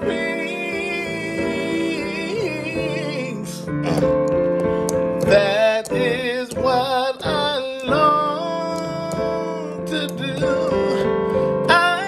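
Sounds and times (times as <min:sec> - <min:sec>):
man singing: 0:00.0 - 0:04.5, 0:05.1 - 0:12.0
instrumental accompaniment: 0:00.0 - 0:12.0.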